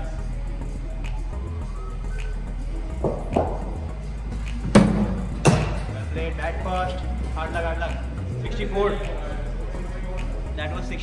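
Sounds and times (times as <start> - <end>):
bat hitting cricket ball: 3.0 - 3.7.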